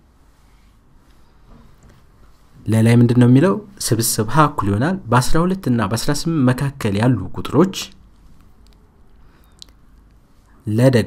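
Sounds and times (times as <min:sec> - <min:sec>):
faint room hum and hiss: 0:00.0 - 0:11.0
man speaking: 0:02.6 - 0:08.0, 0:10.6 - 0:11.0.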